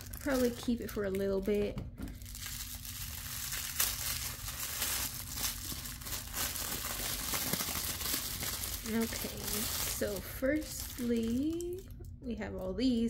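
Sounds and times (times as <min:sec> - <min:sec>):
tissue paper crinkling: 0:02.2 - 0:11.7.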